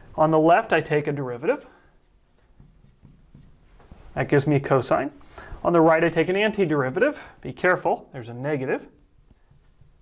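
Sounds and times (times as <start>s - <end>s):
marker writing on glass: 0.7s - 4.0s, 8.9s - 10.0s.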